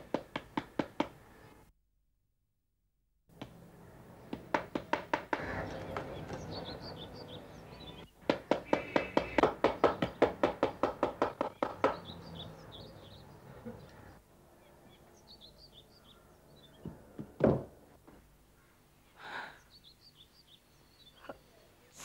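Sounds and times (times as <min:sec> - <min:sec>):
birds chirping: 0:03.4 - 0:17.4, 0:18.4 - 0:22.0.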